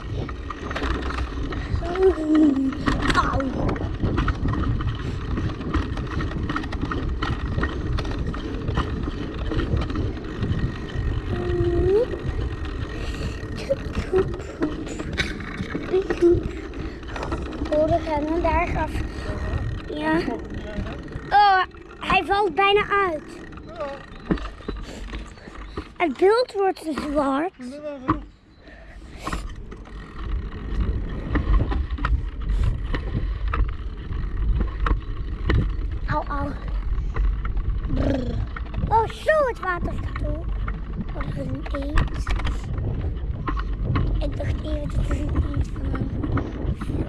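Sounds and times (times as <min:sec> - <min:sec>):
bike rattling over brick paving: 0:00.0 - 0:47.0
wind rumbling on microphone: 0:00.0 - 0:47.0.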